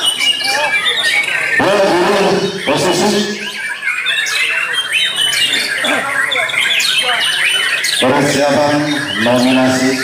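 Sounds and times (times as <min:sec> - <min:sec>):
songbirds whistling and trilling: 0:00.0 - 0:10.0.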